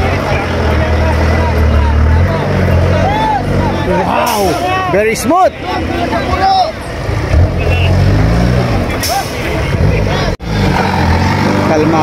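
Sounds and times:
buggy engine revving hard: 0:00.0 - 0:04.5, 0:06.3 - 0:12.0
people shouting: 0:02.0 - 0:06.8.

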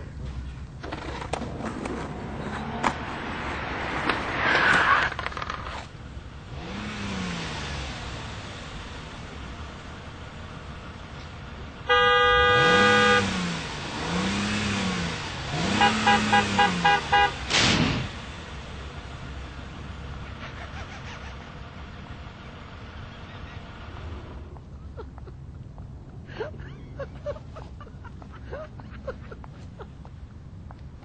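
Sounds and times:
skateboard rolling and clacking: 0:00.8 - 0:03.0
engine revving: 0:06.4 - 0:10.7, 0:11.8 - 0:24.5
car horn blast: 0:11.8 - 0:13.5, 0:15.6 - 0:17.5
short horn toots: 0:11.9 - 0:13.4, 0:15.7 - 0:17.4.

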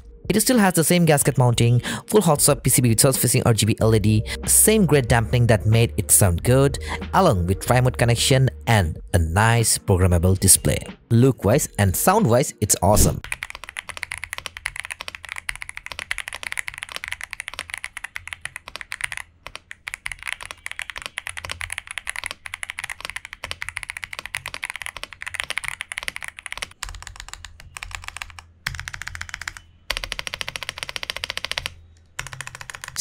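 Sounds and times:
mechanical keyboard typing: 0:12.8 - 0:33.0.

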